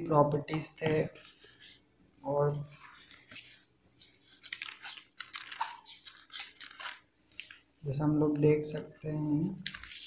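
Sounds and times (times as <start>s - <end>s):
notebook pages rustling: 0.6s - 7.8s, 9.6s - 10.0s.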